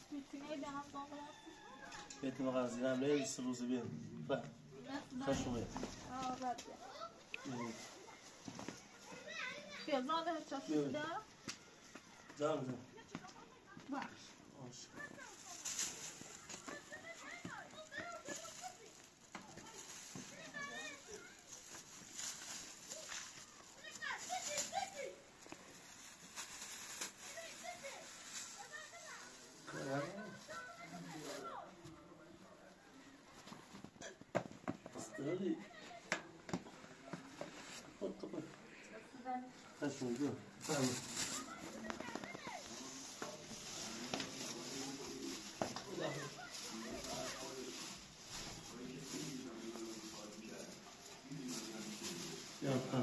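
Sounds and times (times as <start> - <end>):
adults talking quietly: 0.0 - 53.0.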